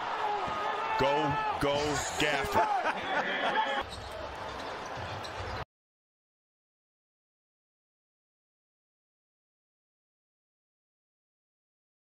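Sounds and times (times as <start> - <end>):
basketball court noise: 3.8 - 5.6.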